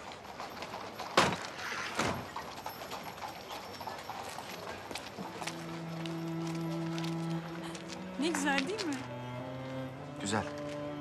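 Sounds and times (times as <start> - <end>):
clopping steps on pavement: 0.0 - 11.0
low string background music: 5.1 - 11.0.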